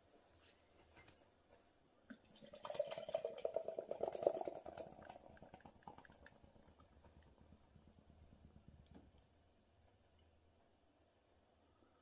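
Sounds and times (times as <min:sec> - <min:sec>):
beer pouring into a glass: 0:02.1 - 0:07.4.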